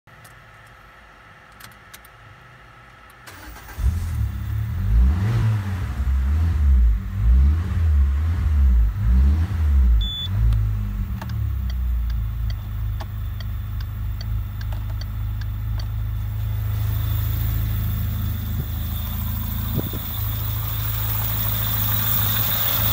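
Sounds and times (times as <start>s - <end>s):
car engine starting and revving: 3.2s - 22.9s
short beep: 10.0s - 10.4s.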